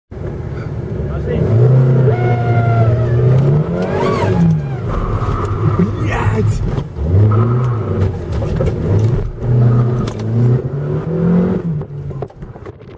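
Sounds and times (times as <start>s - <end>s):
car engine revving: 0.8s - 12.4s.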